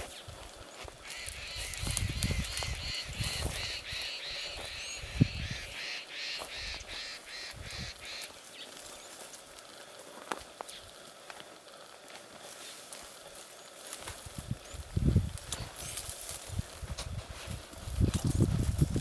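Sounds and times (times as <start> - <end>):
bird calling repeatedly: 1.0 - 9.2.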